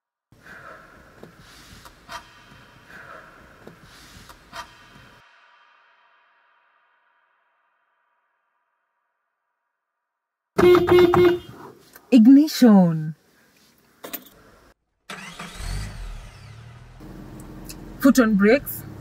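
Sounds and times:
car horn honking: 0:10.6 - 0:11.6.

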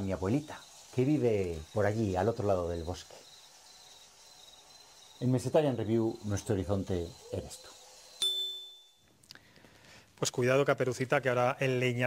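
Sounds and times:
bright bell-like ding: 0:08.2 - 0:09.0.

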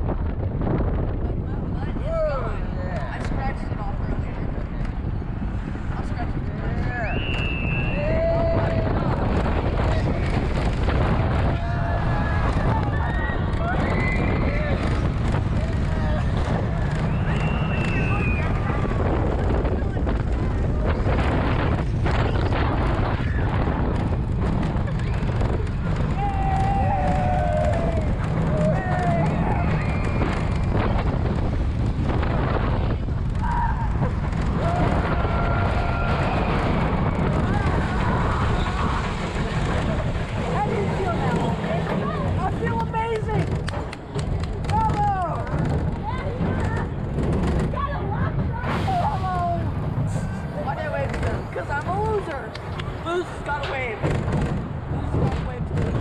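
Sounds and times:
wheels rumbling on track: 0:00.0 - 0:56.0
wind rushing: 0:00.0 - 0:56.0
riders screaming: 0:11.3 - 0:15.0, 0:25.9 - 0:30.7, 0:33.2 - 0:42.3.

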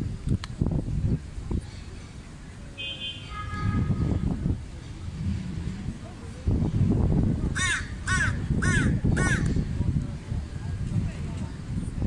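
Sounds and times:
crow cawing: 0:07.6 - 0:09.5.

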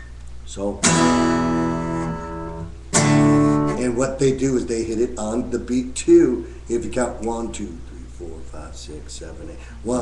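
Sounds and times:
acoustic guitar power chord: 0:00.8 - 0:04.0.

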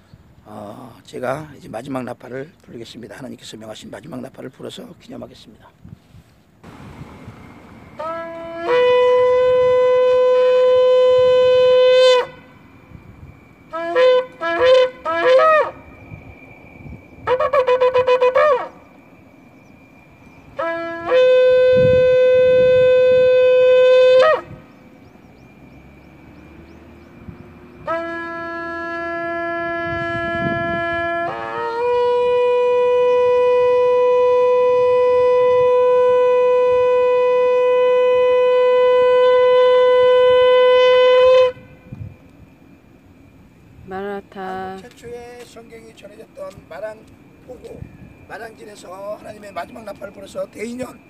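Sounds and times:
shofar blasts: 0:06.6 - 0:19.1, 0:20.4 - 0:24.7, 0:27.7 - 0:41.9.

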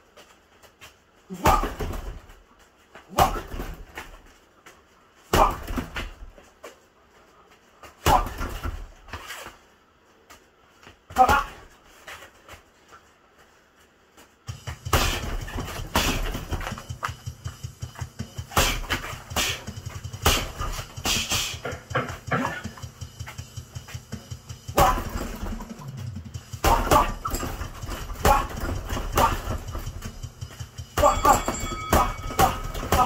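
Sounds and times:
boxing gloves punching a bag: 0:01.3 - 0:02.4, 0:03.0 - 0:04.4, 0:05.2 - 0:06.5, 0:07.8 - 0:09.2, 0:11.1 - 0:11.7, 0:14.4 - 0:33.0.

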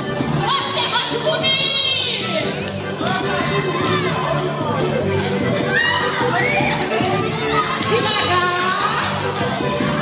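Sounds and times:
children shouting and cheering: 0:00.0 - 0:10.0
dance music: 0:00.0 - 0:10.0.

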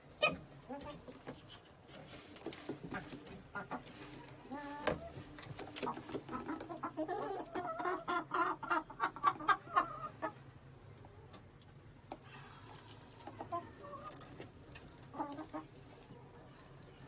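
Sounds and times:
hens clucking: 0:00.0 - 0:17.0.

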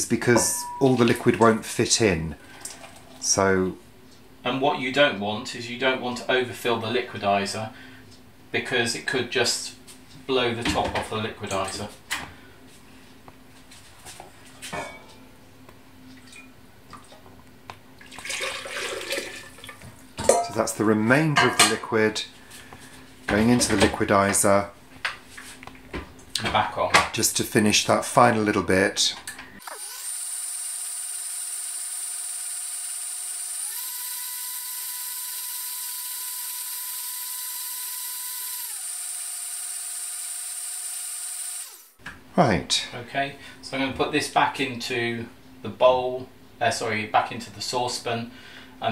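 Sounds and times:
liquid splashing into blender jug: 0:18.0 - 0:19.8
blender motor running: 0:29.6 - 0:42.0.

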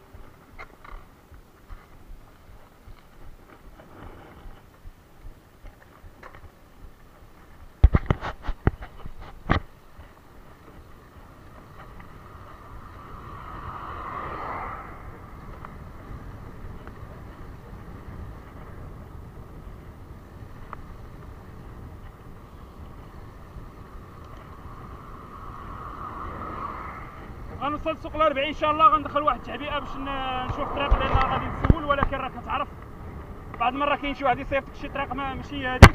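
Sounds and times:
bicycle road noise: 0:00.0 - 0:35.9
wind rushing over microphone: 0:07.6 - 0:35.9
vehicle passing: 0:10.4 - 0:35.2.

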